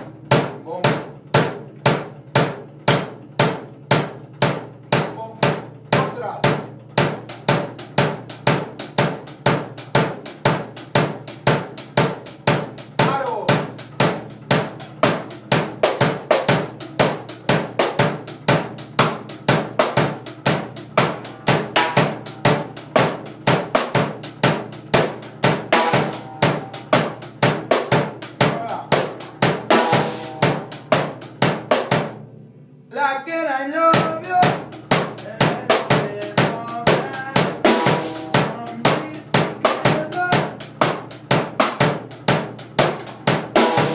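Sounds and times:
drum kit reggae groove: 0.0s - 43.9s.

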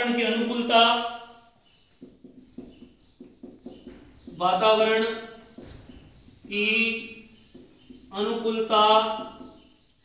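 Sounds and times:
marker squeaking on whiteboard: 1.7s - 8.4s.

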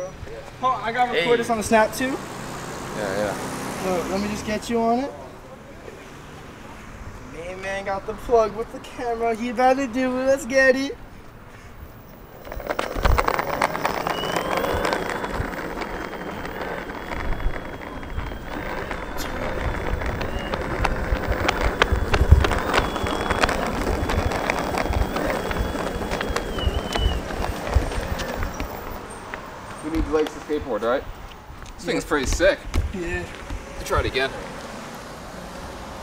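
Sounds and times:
skateboard wheels rumbling on asphalt: 0.2s - 36.0s
electric motor whine: 12.4s - 28.9s.

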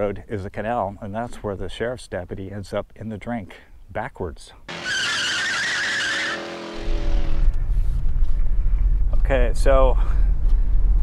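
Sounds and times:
car tire screech: 4.7s - 7.5s.

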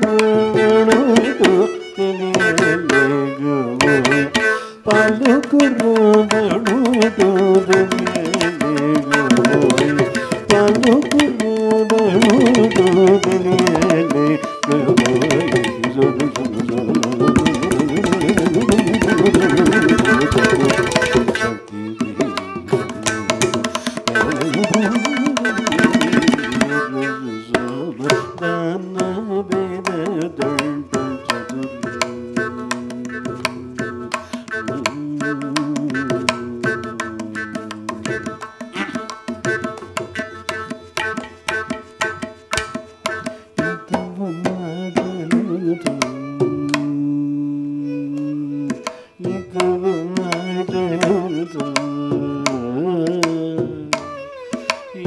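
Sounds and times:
hand drum strokes: 0.0s - 55.0s
sliding melody: 6.1s - 53.5s
held melodic note: 6.8s - 28.8s.

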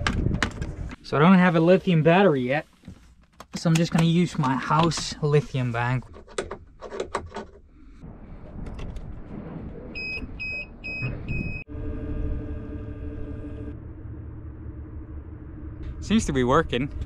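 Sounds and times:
electric outboard motor whine: 11.7s - 16.3s.

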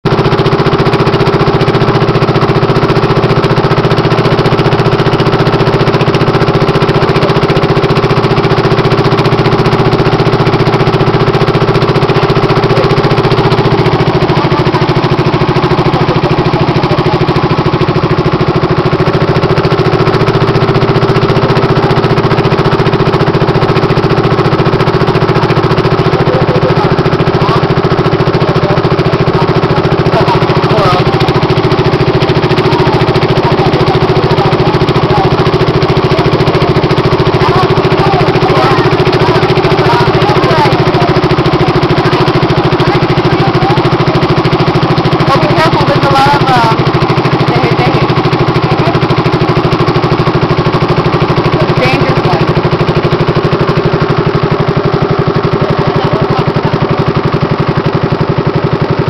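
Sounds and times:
boat engine running: 0.0s - 59.0s.

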